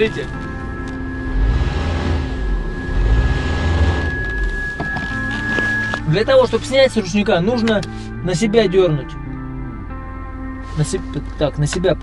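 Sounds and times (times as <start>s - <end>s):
car engine revving: 0.0s - 6.0s
background music: 0.0s - 12.0s.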